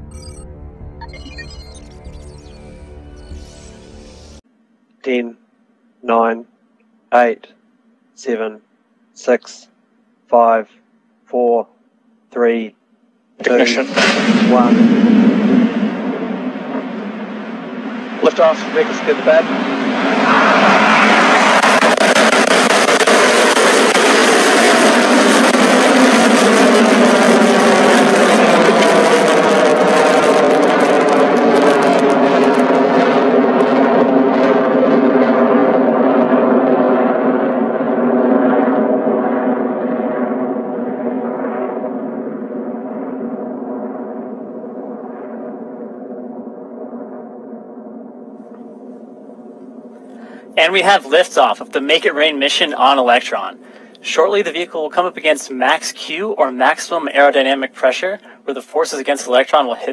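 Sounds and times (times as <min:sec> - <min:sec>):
rocket engine roar: 0:13.4 - 0:59.9.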